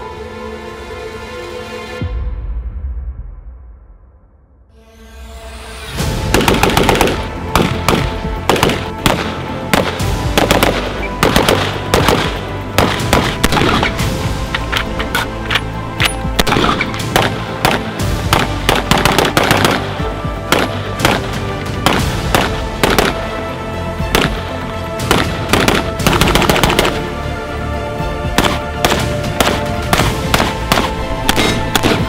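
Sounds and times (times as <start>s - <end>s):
background music: 0.0s - 32.0s
rifle shots: 6.3s - 14.0s, 16.0s - 23.3s, 24.1s - 24.4s, 25.0s - 27.1s, 28.3s - 32.0s.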